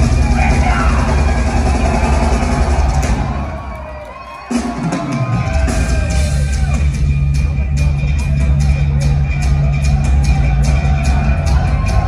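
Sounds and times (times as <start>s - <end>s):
thrash metal band playing live: 0.0s - 3.7s, 4.5s - 12.0s.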